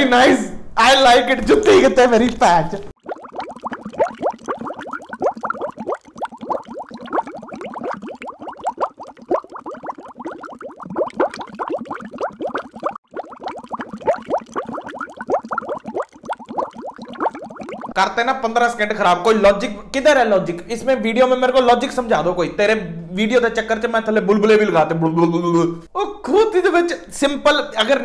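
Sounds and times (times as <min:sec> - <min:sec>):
muffled bubbling chirps: 0:03.0 - 0:18.0.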